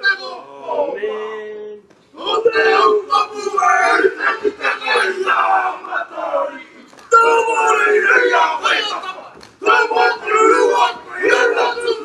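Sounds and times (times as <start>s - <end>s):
men chanting in unison shouts: 2.2s - 12.0s.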